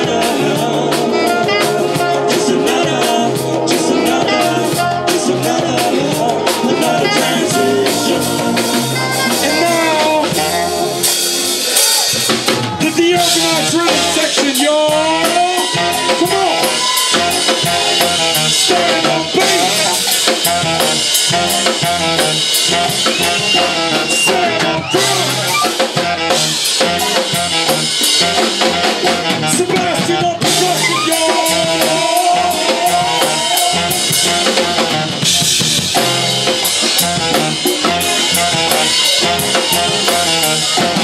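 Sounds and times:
gliding melodic lead line: 0.0 - 29.4, 30.4 - 41.0
drum kit beat: 0.0 - 41.0
electric bass line: 0.0 - 41.0
jazz-funk band playing: 0.0 - 41.0.

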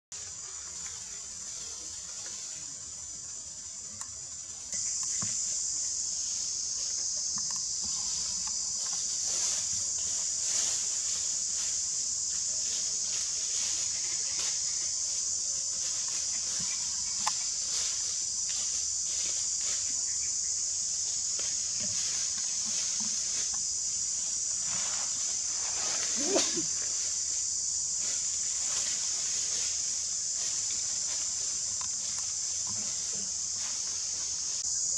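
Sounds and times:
high-pitched insect chorus: 0.1 - 34.9.

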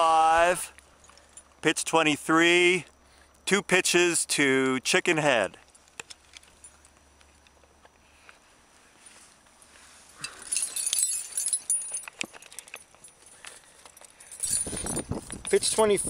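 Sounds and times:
climbing gear clinking: 0.7 - 1.6, 10.1 - 16.0.

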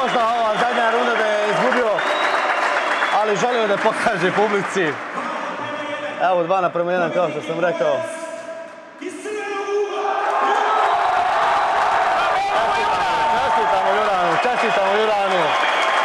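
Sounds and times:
crowd applause: 0.0 - 6.0, 10.3 - 16.0.

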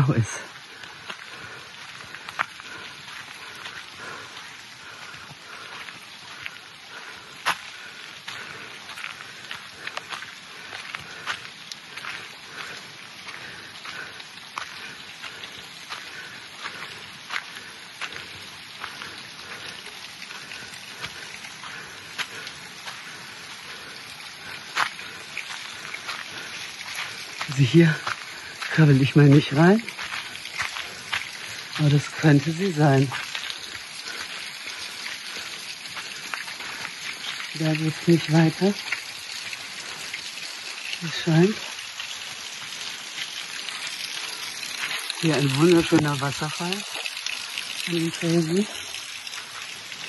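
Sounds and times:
footsteps on gravel path: 0.1 - 40.2, 41.0 - 47.4.

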